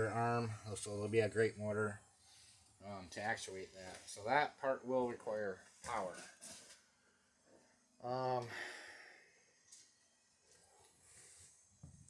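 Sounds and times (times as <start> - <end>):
breathy hiss: 2.0 - 3.1, 7.5 - 9.7.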